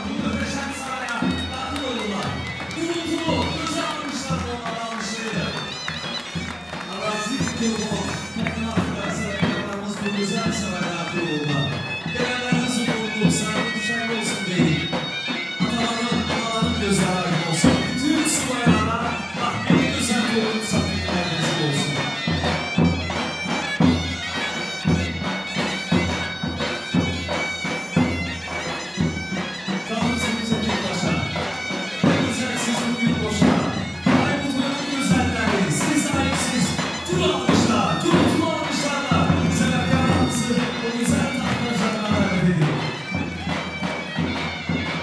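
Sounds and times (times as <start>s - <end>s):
reedy wind instrument melody: 0.0s - 45.0s
steady drum beat: 0.0s - 45.0s.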